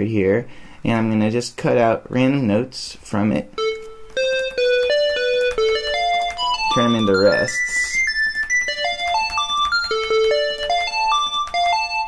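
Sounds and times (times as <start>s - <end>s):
synthesized single notes: 3.6s - 12.0s.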